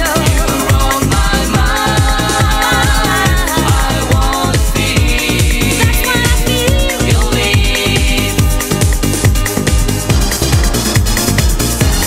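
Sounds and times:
eurodance music: 0.0 - 12.0
steady kick drum: 0.0 - 12.0.

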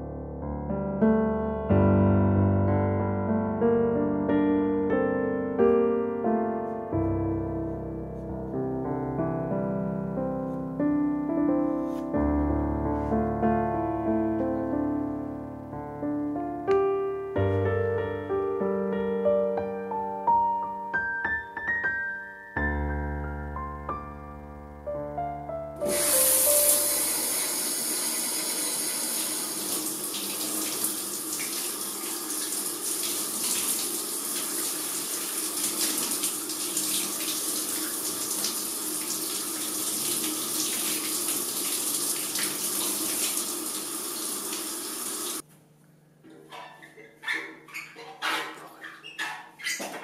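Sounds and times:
running water rushing: 25.8 - 45.4.

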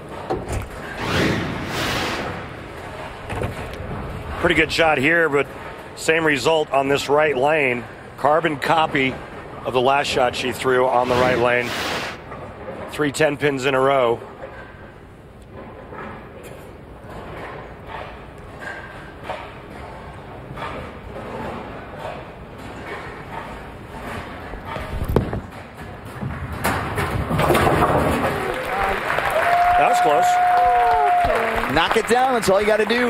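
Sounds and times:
bowling ball rolling: 24.0 - 28.7
crowd cheering and applauding: 28.3 - 33.0.

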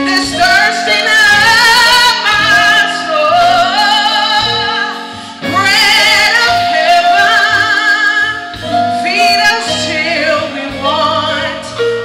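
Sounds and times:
keyboard accompaniment: 0.0 - 12.0
woman singing gospel song: 0.0 - 12.0.

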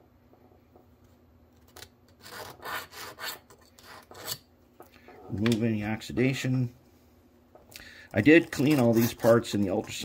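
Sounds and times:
needle file scraping metal: 2.1 - 4.5, 8.2 - 10.0.

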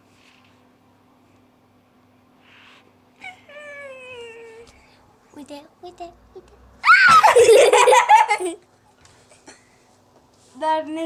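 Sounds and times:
person laughing loudly: 6.9 - 8.6.

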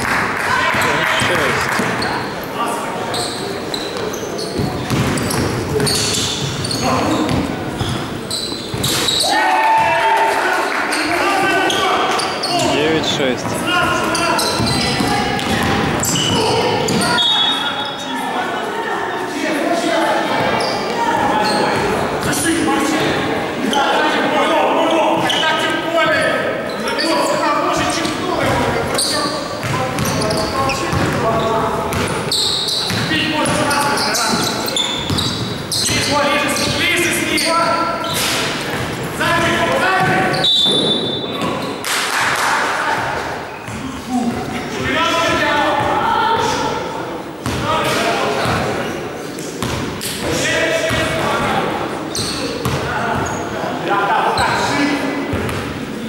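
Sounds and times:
players calling out: 0.2 - 56.0
sneaker squeaks: 0.6 - 9.9, 10.8 - 18.2, 20.2 - 22.4, 24.8 - 42.0, 43.0 - 46.7, 47.4 - 55.8
basketball bouncing on hardwood floor: 4.6 - 5.5
basketball bouncing: 4.6 - 8.0, 13.4 - 17.2, 29.6 - 31.3, 32.9 - 33.7, 34.4 - 36.1, 47.4 - 48.6, 49.6 - 49.9, 52.6 - 52.9, 55.3 - 55.7.

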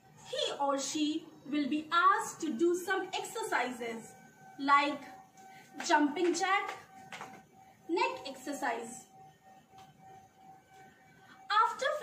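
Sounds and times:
faint high-pitched hum: 0.0 - 12.0.

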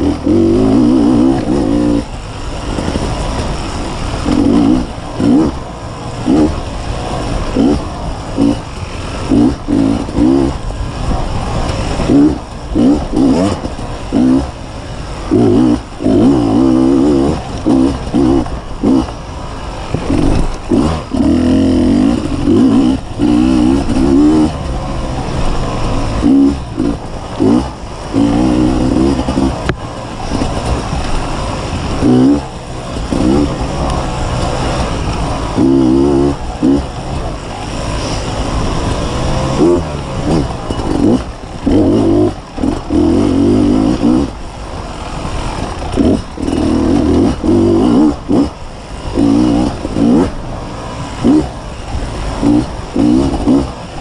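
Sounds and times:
motorbike engine revving: 0.0 - 54.0.

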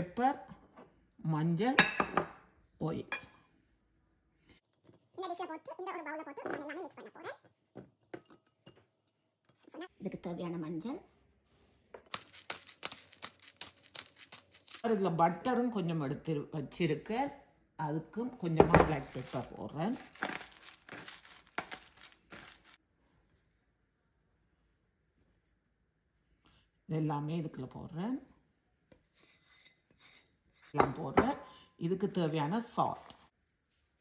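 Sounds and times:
pepper grinder grinding: 12.1 - 14.9, 19.0 - 22.8
spices scraped into glass bowl: 29.1 - 30.8.

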